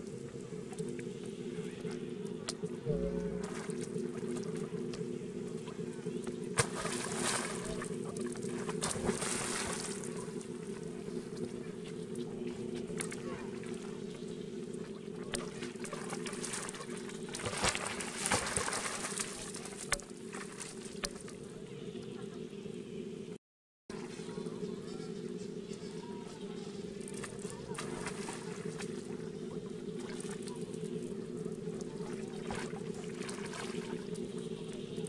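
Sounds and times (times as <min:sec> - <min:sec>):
water splashing and sloshing: 0:00.0 - 0:21.6, 0:27.0 - 0:35.0
steady low hum: 0:00.0 - 0:35.0
sharp splashes: 0:06.5 - 0:10.8, 0:15.1 - 0:21.3, 0:27.1 - 0:29.1, 0:32.1 - 0:34.2.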